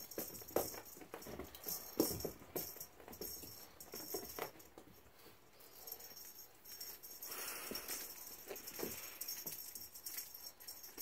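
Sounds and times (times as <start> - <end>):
toy jangling: 0.0 - 11.0.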